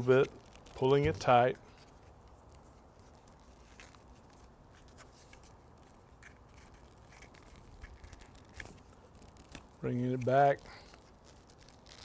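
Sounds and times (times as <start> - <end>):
extension cord clicks and rustles: 0.0 - 12.0.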